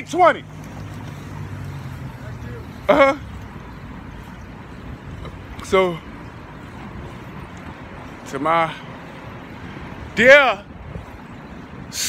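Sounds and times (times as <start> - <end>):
faint street noise: 0.0 - 12.0
vehicle engine humming: 0.0 - 12.0.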